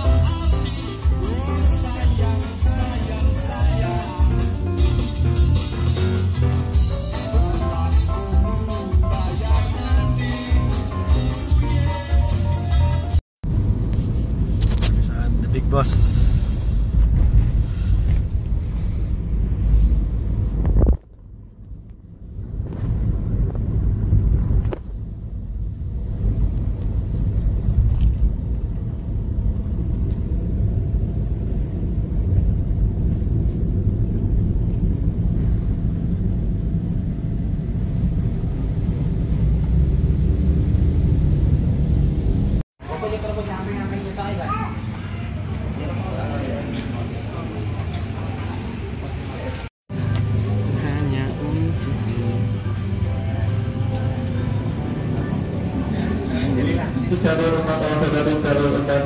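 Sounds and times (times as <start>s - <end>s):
car road and engine rumble: 12.7s - 59.0s.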